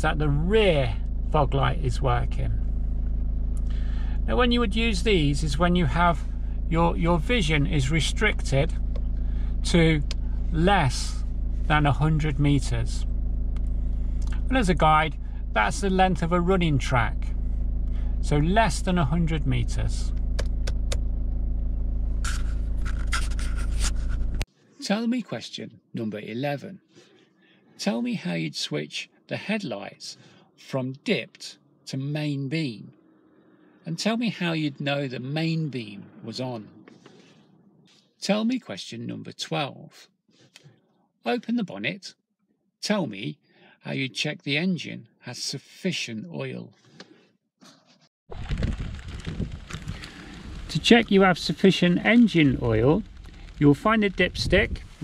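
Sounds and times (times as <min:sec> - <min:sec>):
car engine idling: 0:00.0 - 0:24.5, 0:32.9 - 0:38.0, 0:49.0 - 0:55.0
scraping rustle: 0:22.3 - 0:24.5, 0:47.6 - 0:55.0
wind buffeting microphone: 0:48.3 - 0:51.2, 0:54.2 - 0:55.0.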